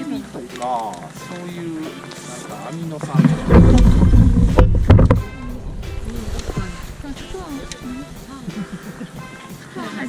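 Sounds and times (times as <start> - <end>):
wind buffeting microphone: 3.1 - 8.7.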